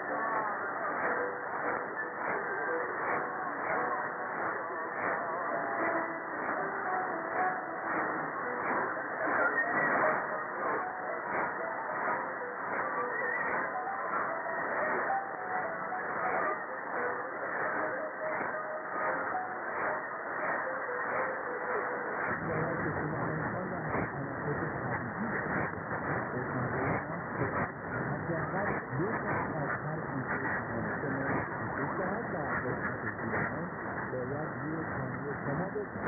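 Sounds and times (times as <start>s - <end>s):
muffled radio programme audio: 0.0s - 36.0s
radio static with pulsing: 0.0s - 36.0s.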